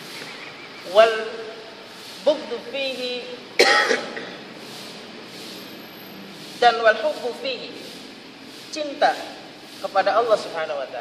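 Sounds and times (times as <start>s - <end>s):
person speaking: 0.8s - 4.4s, 6.4s - 11.0s
person coughing: 3.6s - 4.4s.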